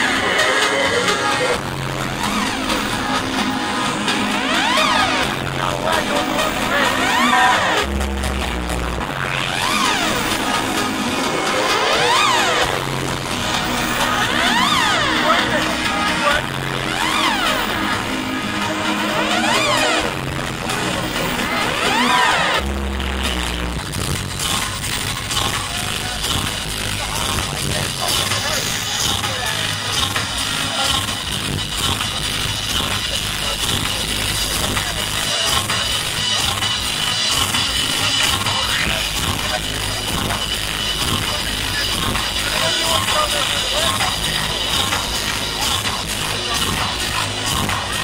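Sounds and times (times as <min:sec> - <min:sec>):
electronic dance music: 0:00.0 - 0:48.0
heavy bass note: 0:01.4 - 0:48.0.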